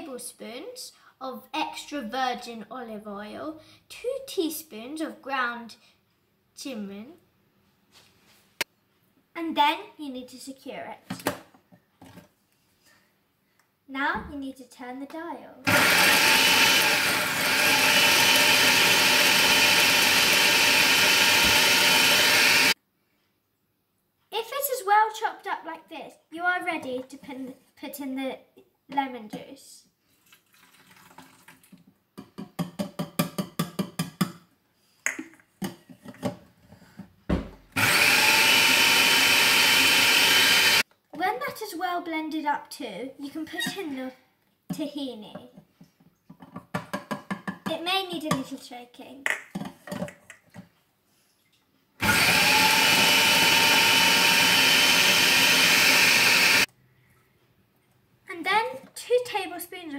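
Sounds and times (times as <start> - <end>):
food processor motor whining: 15.7 - 22.8, 37.8 - 40.8, 52.0 - 56.7
food processor short pulses: 15.7 - 22.8, 37.8 - 40.8, 52.0 - 56.7.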